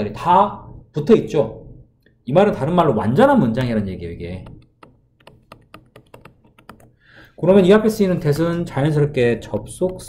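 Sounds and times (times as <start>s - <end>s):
stylus tapping on glass screen: 4.4s - 8.5s, 9.4s - 10.0s.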